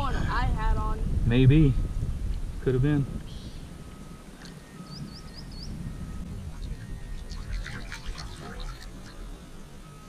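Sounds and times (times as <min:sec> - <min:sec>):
wind noise on microphone: 0:00.0 - 0:09.9
small bird chirping: 0:03.2 - 0:10.0.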